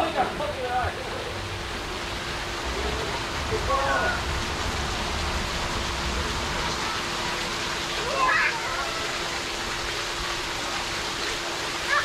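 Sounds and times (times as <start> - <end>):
waterfall splashing into pool: 0.0 - 12.0.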